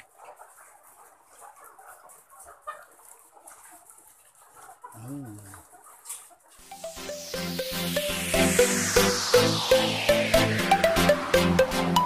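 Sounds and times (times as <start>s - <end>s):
hens clucking softly: 0.0s - 6.6s.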